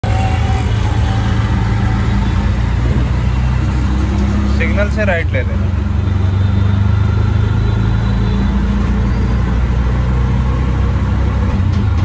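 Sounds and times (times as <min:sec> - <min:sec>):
rickshaw engine running: 0:00.0 - 0:12.0
road and traffic noise: 0:00.0 - 0:12.0.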